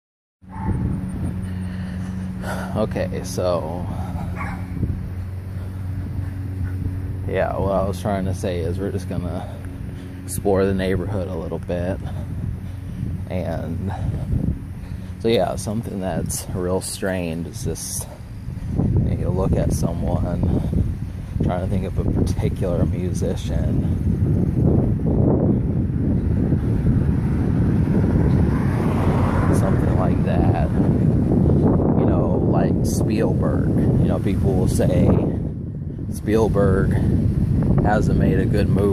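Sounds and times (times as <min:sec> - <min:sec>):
low motor hum: 0:00.4 - 0:38.9
wind buffeting microphone: 0:00.4 - 0:38.9.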